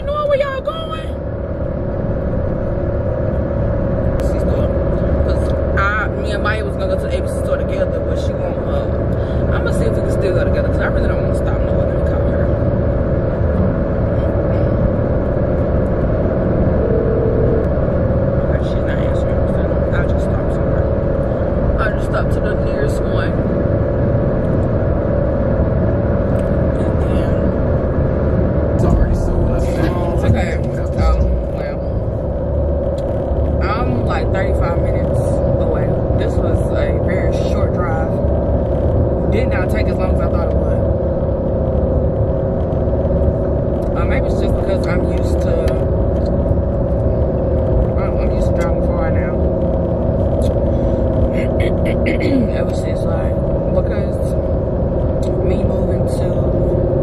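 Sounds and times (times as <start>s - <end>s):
car road and engine rumble: 0.0s - 57.0s.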